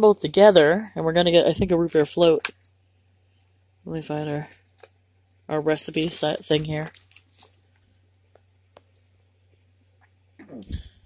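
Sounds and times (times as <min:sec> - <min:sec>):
paper crinkles and clicks: 0:06.9 - 0:07.9.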